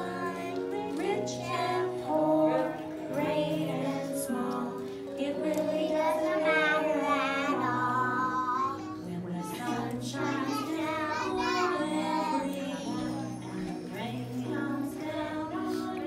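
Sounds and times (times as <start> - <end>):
musical accompaniment: 0.0 - 16.0
young children singing: 0.0 - 16.0.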